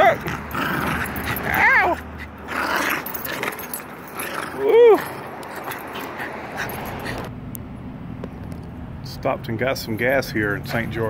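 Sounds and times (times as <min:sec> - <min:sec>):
dog whining: 0:00.0 - 0:07.3.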